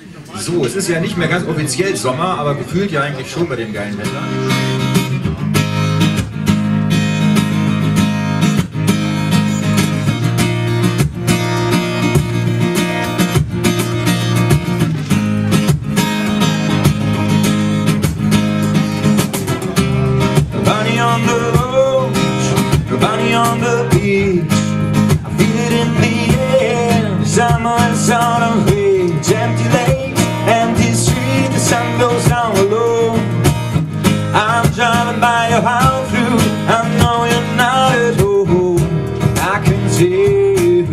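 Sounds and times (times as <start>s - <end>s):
acoustic guitar strumming: 3.4s - 40.9s
cajon and cymbal beat: 4.0s - 40.9s
man singing: 19.1s - 40.9s.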